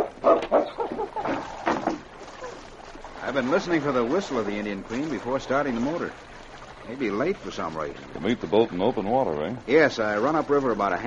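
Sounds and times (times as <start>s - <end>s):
dog barking: 0.0s - 1.1s.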